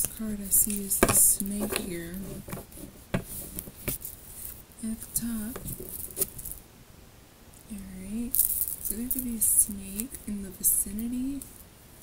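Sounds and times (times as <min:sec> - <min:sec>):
woman speaking: 0:00.0 - 0:02.4, 0:04.8 - 0:05.8, 0:07.7 - 0:11.5.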